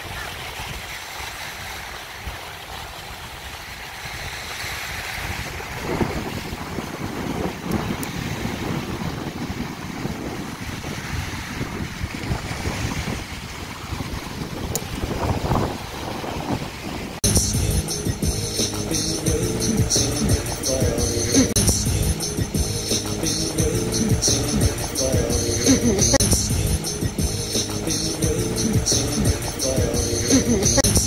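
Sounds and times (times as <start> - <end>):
sea surf washing: 0.0 - 31.0
wind buffeting microphone: 3.0 - 17.2.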